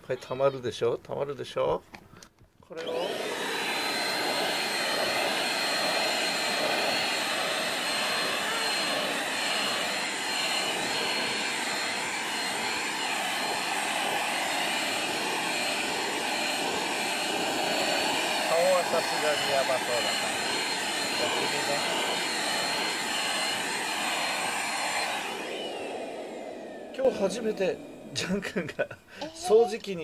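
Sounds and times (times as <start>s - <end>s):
handheld vacuum cleaner whining: 2.7s - 28.6s, 29.2s - 30.0s.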